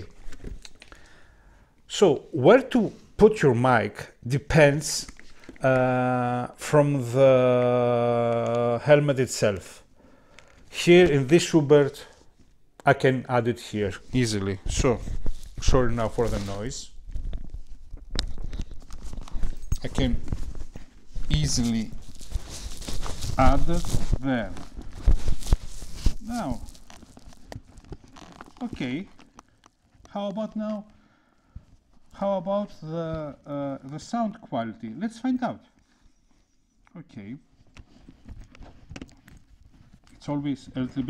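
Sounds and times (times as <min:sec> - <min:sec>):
microphone handling noise: 0:14.0 - 0:28.8.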